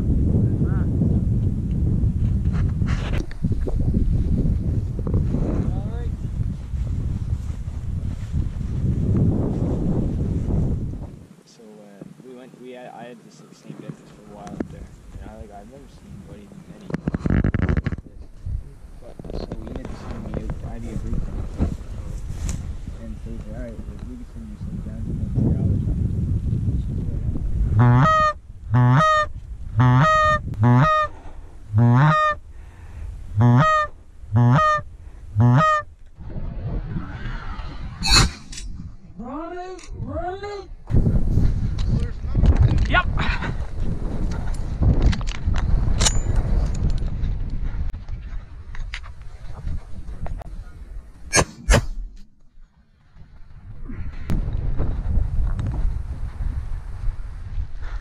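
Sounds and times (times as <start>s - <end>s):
wind noise: 0.0s - 11.3s, 13.7s - 58.0s
goose honking: 27.8s - 31.1s, 31.7s - 32.4s, 33.4s - 34.8s, 35.4s - 35.9s.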